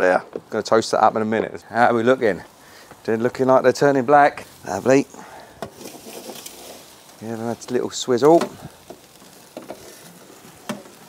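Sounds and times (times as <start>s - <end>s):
vegetables sizzling in metal tray: 1.6s - 11.0s.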